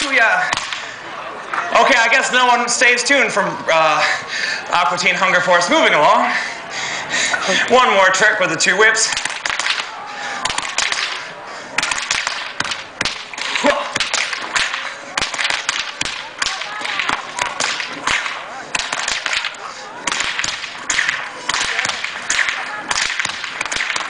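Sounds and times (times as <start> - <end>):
whips cracking: 0.4 - 0.9, 9.1 - 24.0.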